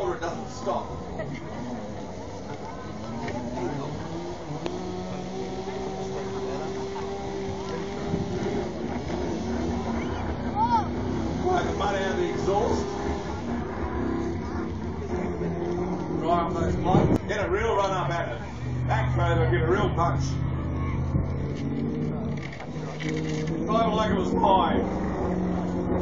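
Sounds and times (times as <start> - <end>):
off-road vehicle engine labouring: 0.0 - 26.0
spectators' voices: 0.0 - 26.0.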